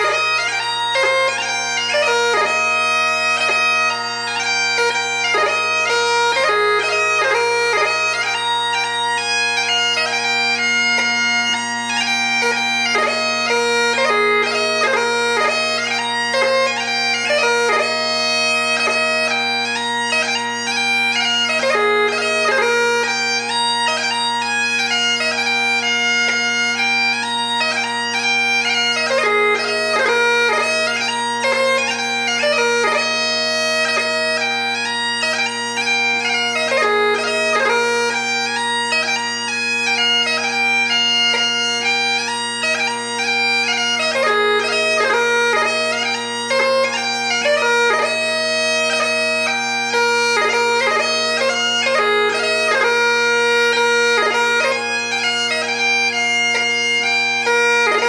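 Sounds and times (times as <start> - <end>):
bagpipe playing a march: 0.0 - 58.0.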